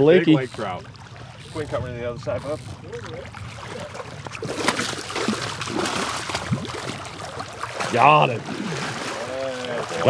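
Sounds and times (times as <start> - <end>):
water splashing and sloshing: 0.0 - 10.0.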